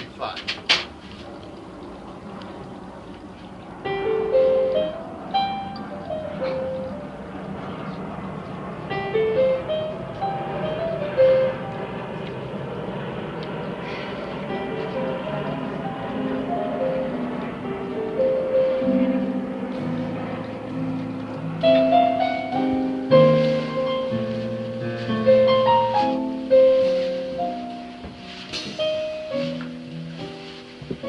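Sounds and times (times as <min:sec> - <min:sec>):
piano melody: 0:01.6 - 0:31.0.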